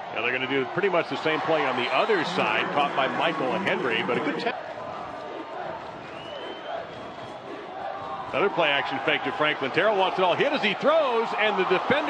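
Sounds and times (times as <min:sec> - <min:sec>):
stadium crowd din: 0:00.0 - 0:12.0
rising whistled tone: 0:01.6 - 0:04.3, 0:06.0 - 0:07.5.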